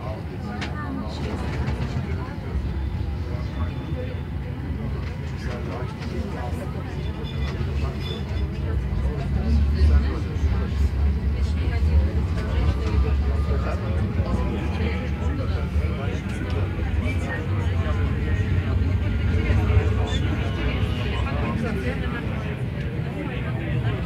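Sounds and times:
passengers' voices: 0.0s - 24.0s
tram low rumble: 0.0s - 24.0s.

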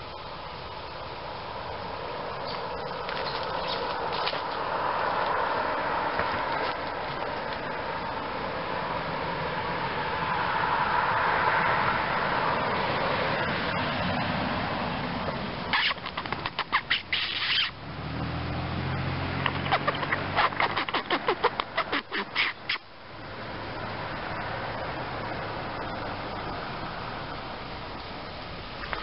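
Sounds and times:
squirrel chattering alarm calls: 2.4s - 4.0s, 15.7s - 17.7s, 19.5s - 22.8s.

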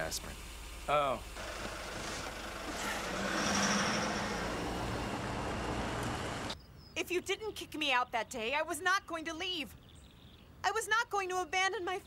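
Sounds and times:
car engine and tyres: 0.0s - 6.6s.

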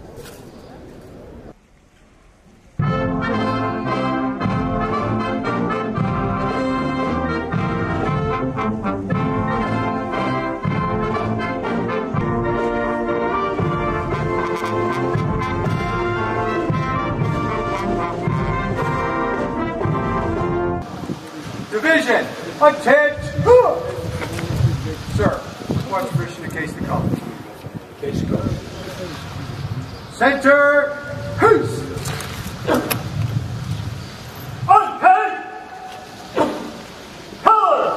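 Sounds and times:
military brass band playing: 2.8s - 21.6s.

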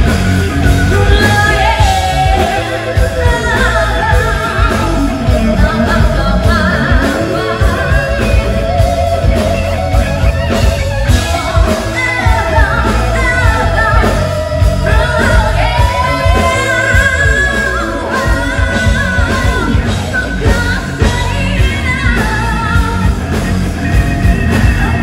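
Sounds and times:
live rock band: 0.0s - 25.0s
woman singing lead: 0.0s - 25.0s.

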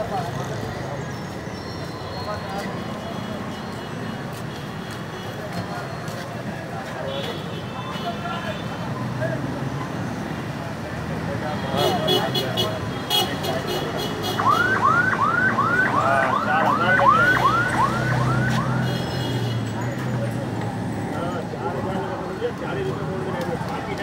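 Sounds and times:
busy street noise: 0.0s - 24.0s
electronic siren yelping: 14.4s - 18.8s.

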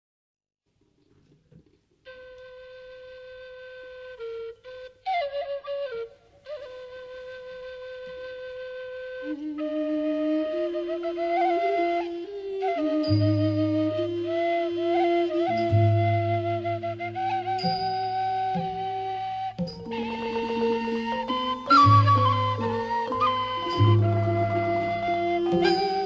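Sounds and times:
bamboo flute melody: 2.0s - 26.0s
lower wind instrument: 2.0s - 26.0s.

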